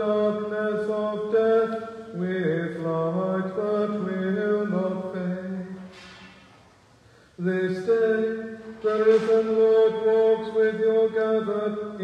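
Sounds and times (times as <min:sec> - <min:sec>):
man chanting plainchant: 0:07.4 - 0:12.0.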